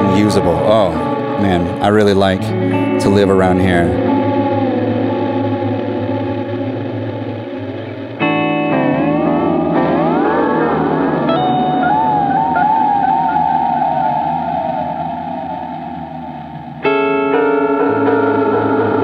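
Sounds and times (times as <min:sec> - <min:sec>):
electric guitar chords with delay: 0:00.0 - 0:19.0.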